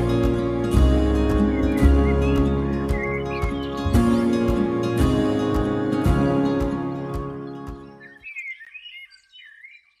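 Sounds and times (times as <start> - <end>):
background music: 0.0 - 8.2.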